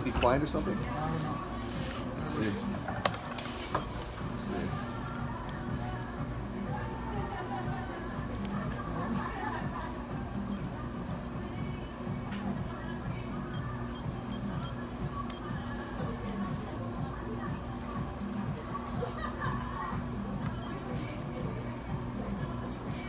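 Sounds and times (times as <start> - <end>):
store background music: 0.0 - 23.0.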